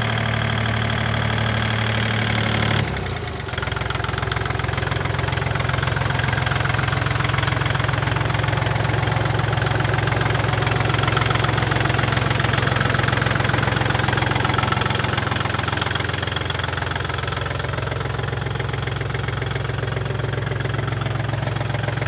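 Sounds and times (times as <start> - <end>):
diesel tractor engine idling: 0.0 - 22.0.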